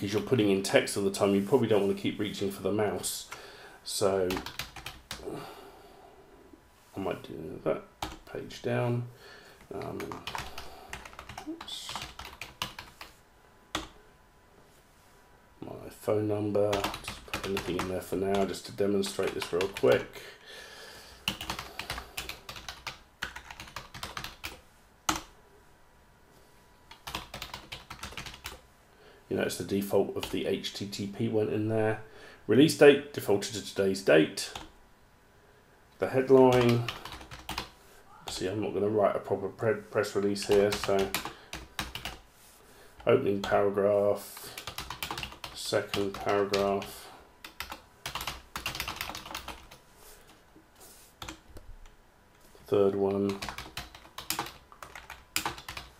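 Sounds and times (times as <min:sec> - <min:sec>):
typing on computer keyboard: 0:04.3 - 0:05.2, 0:09.8 - 0:13.1, 0:16.7 - 0:18.5, 0:19.2 - 0:20.0, 0:21.2 - 0:25.3, 0:26.9 - 0:28.6, 0:36.5 - 0:37.7, 0:40.5 - 0:42.2, 0:44.4 - 0:46.8, 0:47.4 - 0:49.8, 0:53.3 - 0:55.9.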